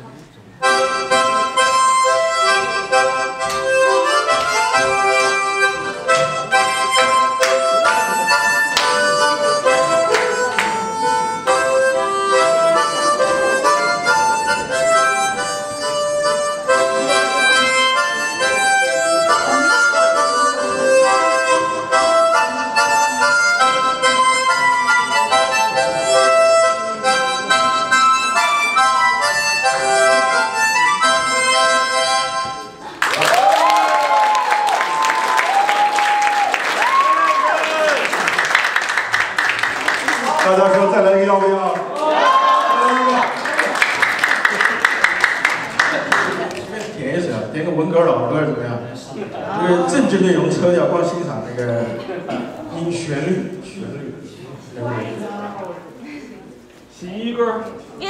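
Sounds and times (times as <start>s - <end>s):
harmonica waltz melody: 0.5s - 33.0s, 49.6s - 52.0s.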